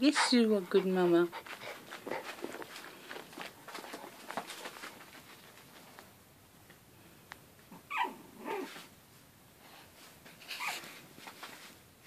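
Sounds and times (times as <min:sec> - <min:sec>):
puppy yipping: 0:07.9 - 0:08.7.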